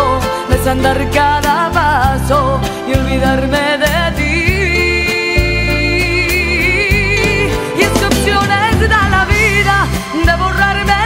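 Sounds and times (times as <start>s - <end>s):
woman singing with vibrato: 0.6s - 11.0s
band and strings accompaniment: 5.4s - 11.0s.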